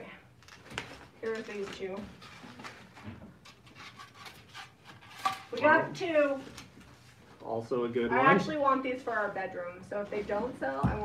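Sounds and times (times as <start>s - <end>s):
packaging rustling: 0.4s - 5.5s.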